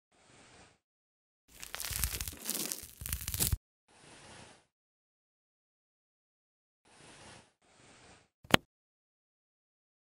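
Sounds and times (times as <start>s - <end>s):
comb scraping skin flakes: 1.5s - 3.6s.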